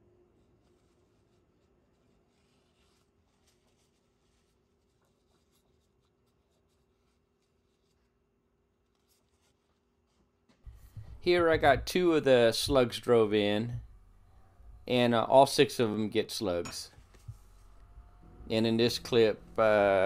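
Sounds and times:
hands rubbing steel parts: 0:10.6 - 0:15.9, 0:16.9 - 0:20.0.

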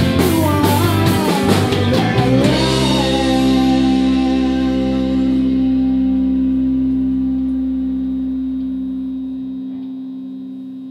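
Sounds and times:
distorted electric guitar chord: 0:00.0 - 0:10.9.

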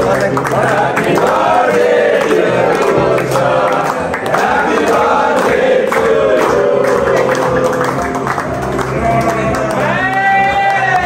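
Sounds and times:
men singing together: 0:00.0 - 0:08.3
hands clapping: 0:00.0 - 0:11.0.

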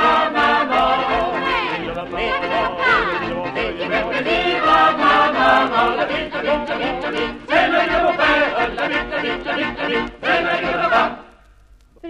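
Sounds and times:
group singing drinking song: 0:00.0 - 0:11.3.

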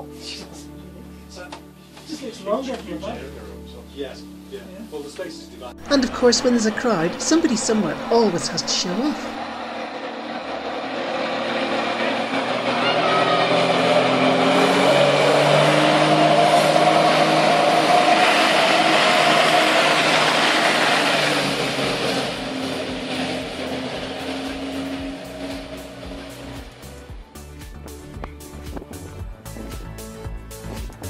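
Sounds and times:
jet ski engine running hard: 0:09.0 - 0:27.2.

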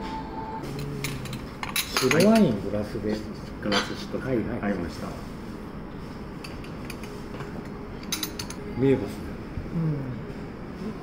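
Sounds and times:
ceramic plates clinking: 0:01.0 - 0:02.6.

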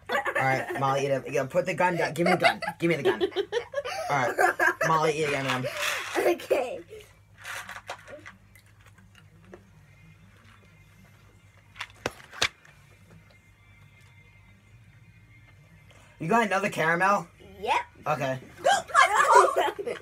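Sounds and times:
faint music from headphones: 0:00.0 - 0:20.0
voice and laughter: 0:18.6 - 0:20.0.

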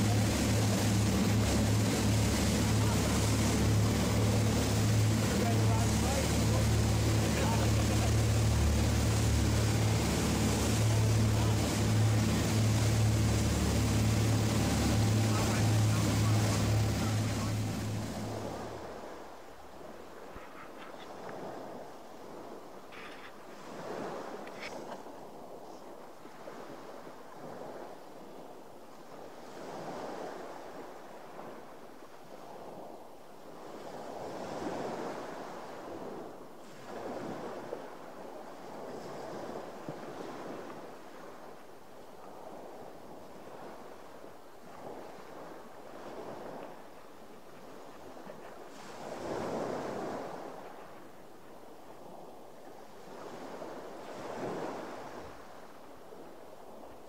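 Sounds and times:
wind on microphone: 0:00.0 - 0:22.7
sea water washing against boat: 0:00.0 - 0:22.8, 0:23.4 - 0:57.0.

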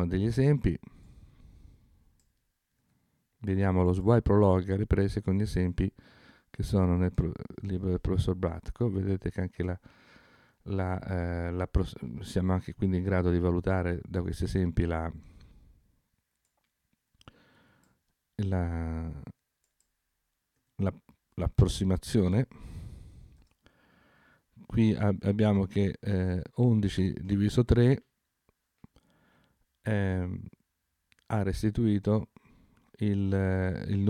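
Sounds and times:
man speaking: 0:00.0 - 0:00.9, 0:03.4 - 0:06.0, 0:06.6 - 0:09.8, 0:10.7 - 0:15.2, 0:18.4 - 0:19.4, 0:20.8 - 0:22.6, 0:24.6 - 0:28.1, 0:29.8 - 0:30.6, 0:31.3 - 0:32.3, 0:33.0 - 0:34.0
computer mouse clicks: 0:19.6 - 0:20.0.

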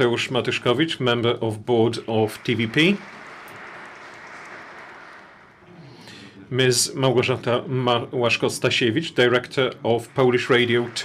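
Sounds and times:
audience applauding: 0:02.0 - 0:05.7, 0:09.3 - 0:11.0.

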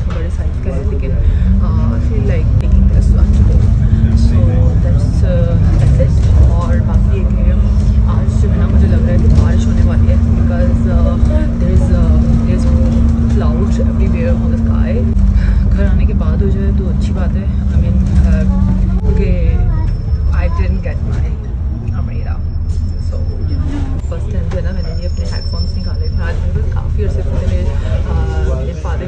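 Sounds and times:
bus engine and road rumble: 0:00.0 - 0:29.0.

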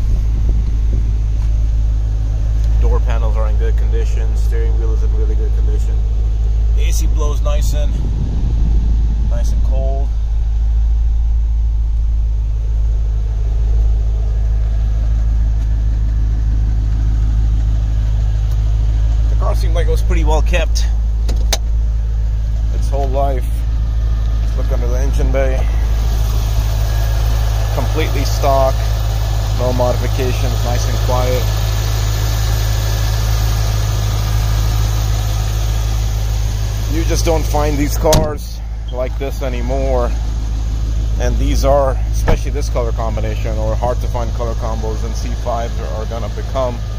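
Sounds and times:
car engine idling: 0:00.0 - 0:46.9.

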